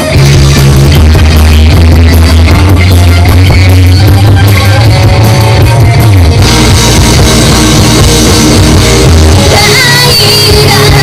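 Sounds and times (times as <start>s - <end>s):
drum kit: 0.0s - 11.0s
electric guitars: 0.0s - 11.0s
low bass note: 0.2s - 10.2s.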